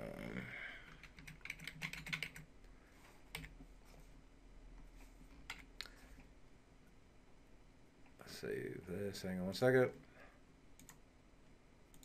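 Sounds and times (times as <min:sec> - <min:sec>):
typing on computer keyboard: 0:00.9 - 0:02.5.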